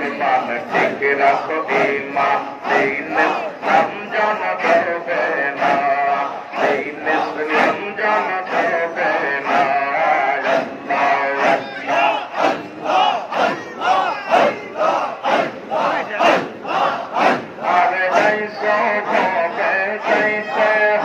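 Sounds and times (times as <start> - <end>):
crowd of men chanting: 0.0 - 21.0.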